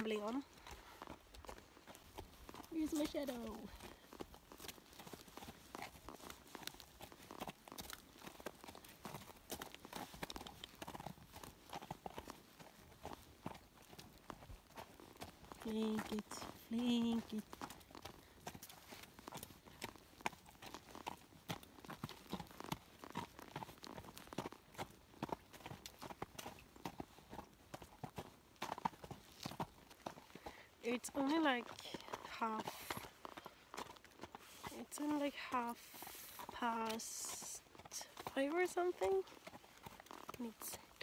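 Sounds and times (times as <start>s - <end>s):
horse hoofbeats on frozen ground: 0.0s - 41.0s.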